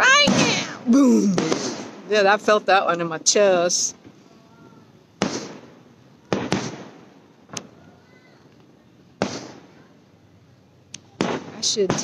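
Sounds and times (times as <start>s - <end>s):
distant fireworks booming: 0.0s - 2.6s, 3.9s - 7.8s, 9.2s - 9.9s, 11.2s - 12.0s.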